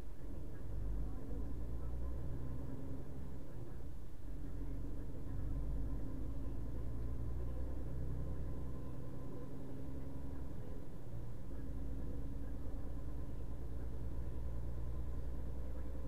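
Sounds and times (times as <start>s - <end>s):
engine and road rumble: 0.0s - 16.0s.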